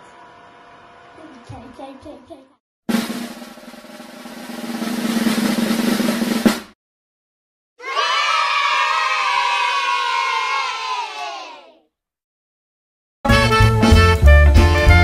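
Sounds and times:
snare drum roll: 2.9 - 6.8
crowd cheering falling in pitch: 7.8 - 11.8.

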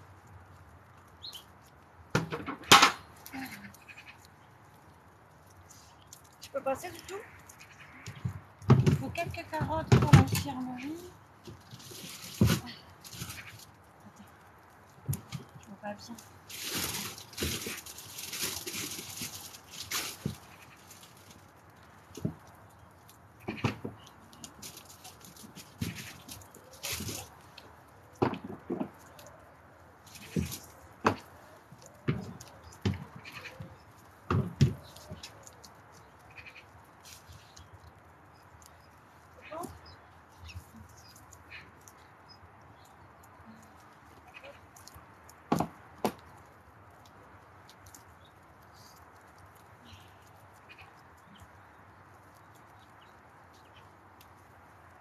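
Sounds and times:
rustling: 0.0 - 55.0.

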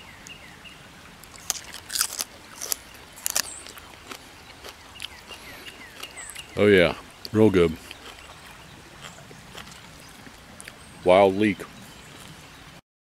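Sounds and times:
man chewing crunchy vegetable: 1.2 - 10.8.

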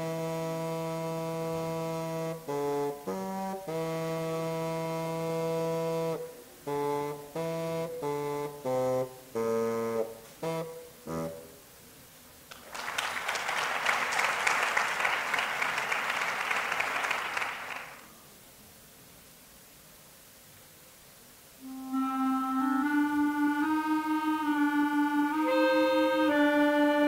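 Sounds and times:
bassoon playing: 0.0 - 11.6, 21.6 - 27.0
audience applause: 12.5 - 18.1.

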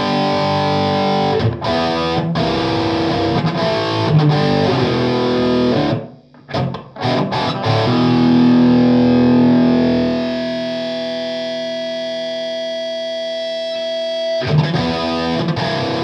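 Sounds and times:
distorted electric guitar chords: 0.0 - 16.0.

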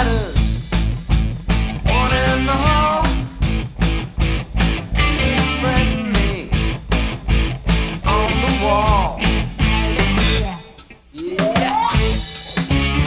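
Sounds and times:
bass guitar: 0.0 - 13.0
drum beat: 0.0 - 13.0
electric guitar bending notes: 0.0 - 13.0.

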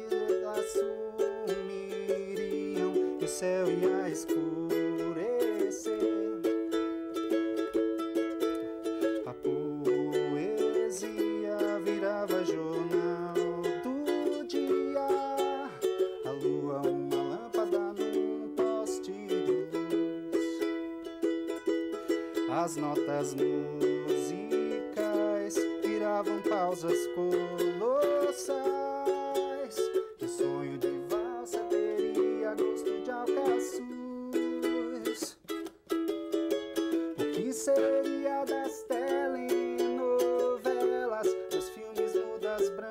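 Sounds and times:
ukulele strumming chords: 0.0 - 42.9.

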